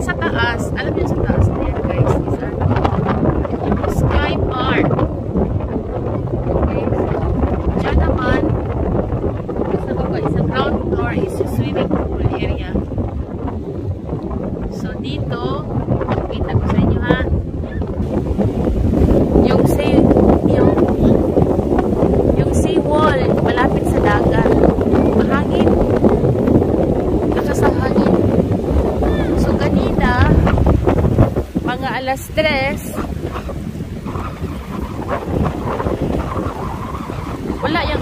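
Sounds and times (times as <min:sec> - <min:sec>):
sea water washing on rocks: 0:00.0 - 0:38.0
wind buffeting microphone: 0:00.0 - 0:38.0.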